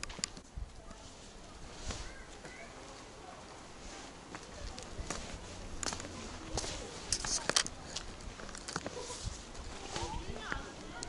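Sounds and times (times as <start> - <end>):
footsteps on sandy stone path: 0.0 - 11.0
faint voices: 0.4 - 11.0.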